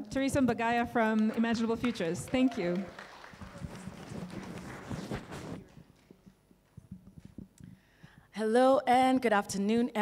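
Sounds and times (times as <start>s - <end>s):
audience applauding: 1.1s - 5.6s.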